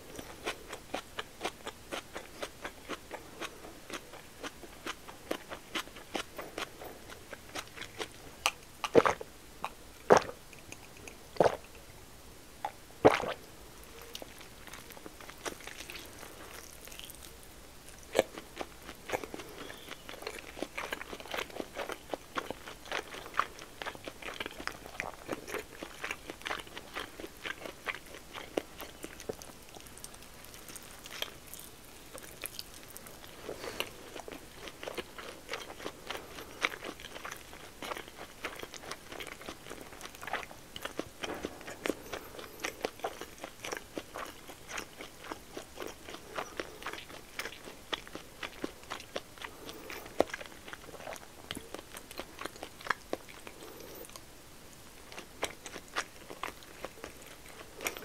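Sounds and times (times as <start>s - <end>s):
close chewing mouth clicks: 0.0s - 11.8s, 12.6s - 17.3s, 17.9s - 54.3s, 55.0s - 58.0s.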